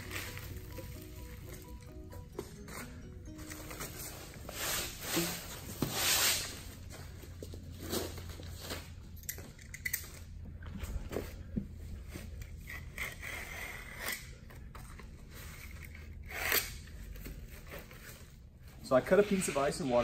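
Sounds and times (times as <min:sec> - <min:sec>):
membrane scrapes and rustles: 0:03.8 - 0:09.0, 0:17.0 - 0:20.0.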